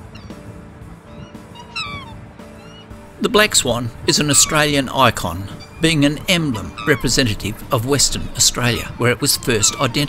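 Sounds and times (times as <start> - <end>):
background music chords: 0.0 - 10.0
faint thin calls: 1.0 - 3.0, 4.1 - 7.4, 8.3 - 10.0
swan high call: 1.1 - 2.9, 4.1 - 4.8, 5.5 - 7.3, 8.6 - 10.0.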